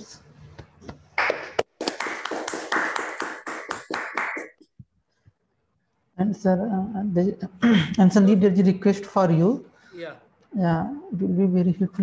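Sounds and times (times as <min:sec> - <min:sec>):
hand clapping: 0:00.6 - 0:04.8.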